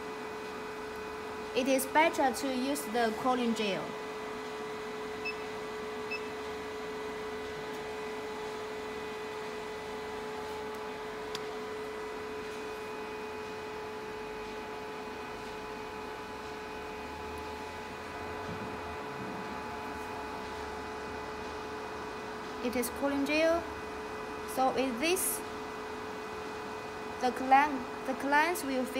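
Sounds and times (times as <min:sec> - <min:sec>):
machine humming steadily: 0:00.0 - 0:28.9.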